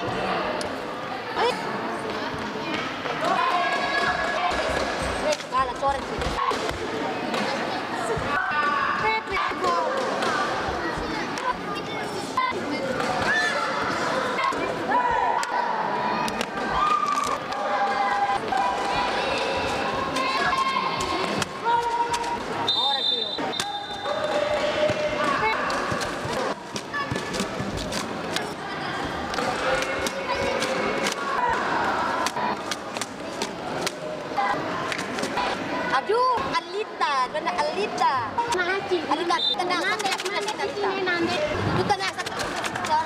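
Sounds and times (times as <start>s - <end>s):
short shouts and voices: 2.7s - 43.0s.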